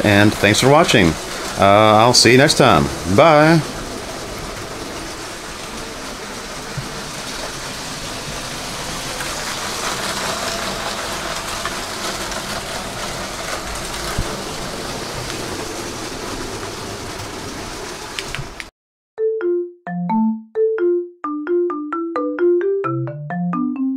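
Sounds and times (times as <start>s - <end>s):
toy train whirring rattle: 9.4s - 13.6s.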